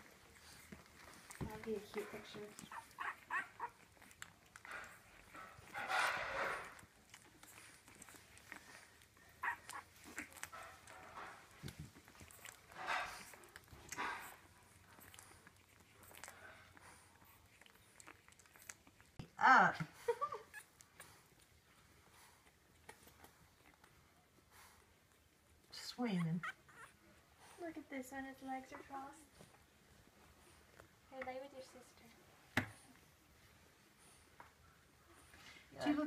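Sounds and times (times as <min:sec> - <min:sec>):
puppies suckling: 0:00.0 - 0:36.0
puppy squeaking: 0:01.2 - 0:04.3, 0:09.3 - 0:11.0, 0:25.8 - 0:27.1.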